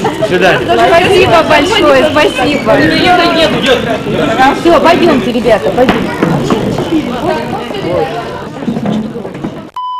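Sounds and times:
crowd chatter: 0.0 - 9.8.

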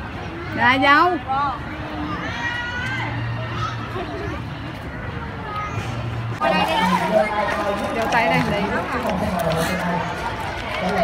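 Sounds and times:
people chattering: 0.0 - 11.0
children's voices: 1.3 - 9.1.

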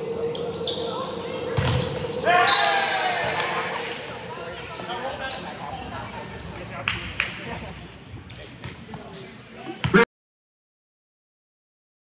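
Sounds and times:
players and spectators voices: 0.0 - 10.0.

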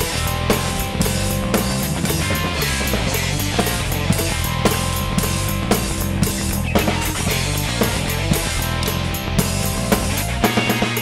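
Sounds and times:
progressive rock backing track: 0.0 - 11.0
rock drum kit played hard: 0.0 - 11.0.

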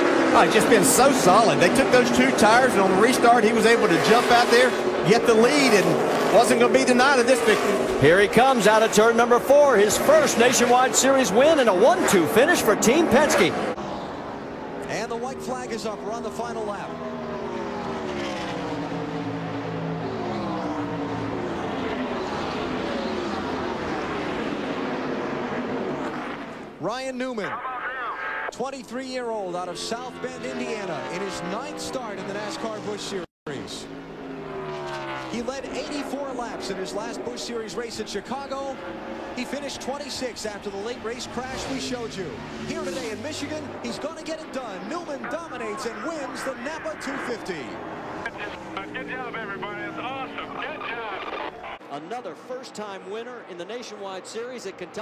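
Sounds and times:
race car engine at full speed: 0.0 - 55.0
man talking: 0.3 - 13.6, 14.8 - 17.0, 26.8 - 33.9, 35.3 - 55.0.

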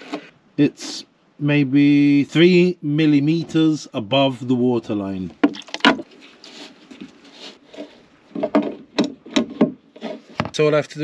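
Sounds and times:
plastic rubbing against plastic drum: 0.0 - 0.3, 5.3 - 10.8
sharp hollow knocks: 5.3 - 6.1, 8.3 - 10.6.

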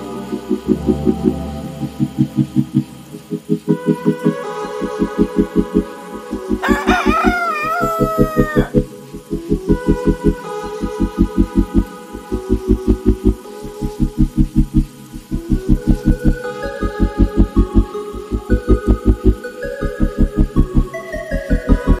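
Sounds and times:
background music with low beat: 0.0 - 22.0
rooster crowing: 6.6 - 8.8.

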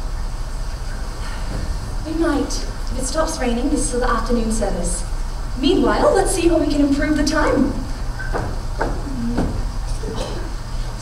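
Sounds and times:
steady low hum: 0.0 - 11.0
footsteps on wooden stage: 8.0 - 10.0.

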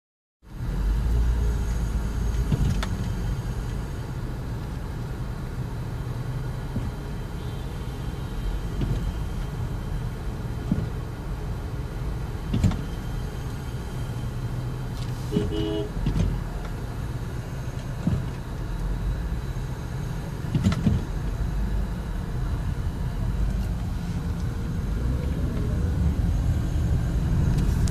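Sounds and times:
car engine and tyres rumbling: 0.4 - 27.9.

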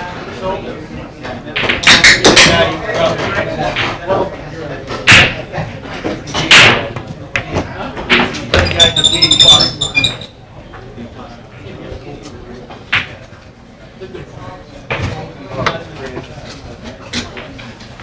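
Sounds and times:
room chatter: 0.0 - 18.0
pool balls clacking: 1.2 - 10.2.

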